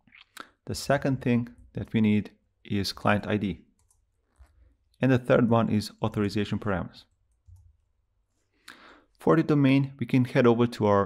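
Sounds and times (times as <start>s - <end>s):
faint keyboard keystrokes: 3.8s - 4.6s.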